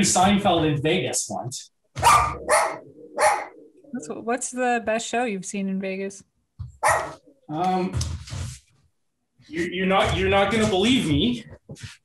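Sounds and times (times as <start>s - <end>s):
dog barking: 2.0s - 3.6s, 6.8s - 7.2s.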